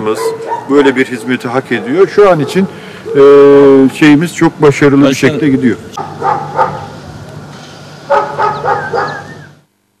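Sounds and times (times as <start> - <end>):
dogs barking: 0.0 - 3.3, 5.4 - 7.0, 8.1 - 9.5
steady low hum: 1.8 - 10.0.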